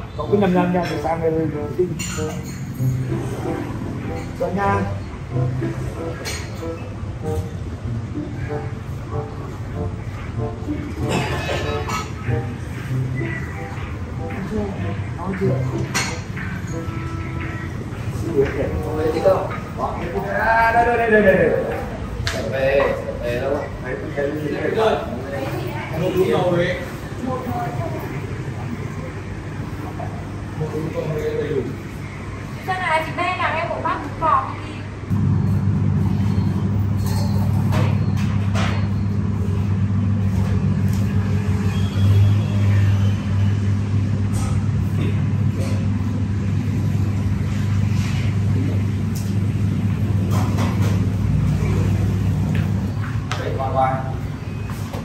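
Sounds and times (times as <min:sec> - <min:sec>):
low mechanical hum: 0:01.6 - 0:55.0.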